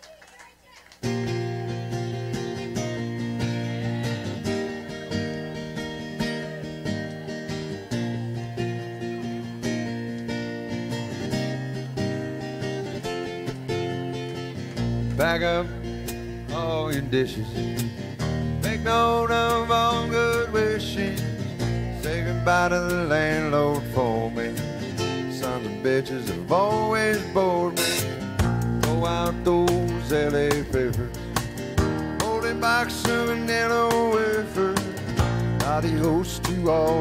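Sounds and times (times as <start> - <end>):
bass: 1.0 - 37.0
strummed acoustic guitar: 1.0 - 37.0
drums: 26.3 - 37.0.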